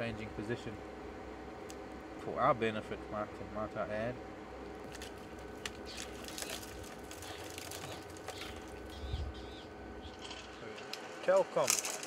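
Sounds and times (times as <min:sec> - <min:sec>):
steady low hum: 0:00.0 - 0:12.0
crunching and clicking of feeding: 0:04.8 - 0:09.2
faint bird chirps: 0:07.3 - 0:10.6.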